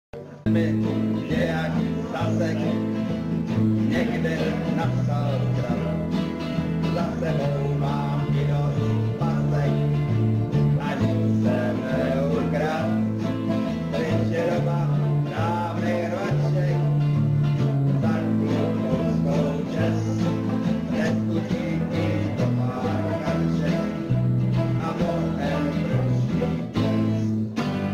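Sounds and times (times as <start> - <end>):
man singing: 0.2 - 27.5
strummed acoustic guitars: 0.2 - 27.9.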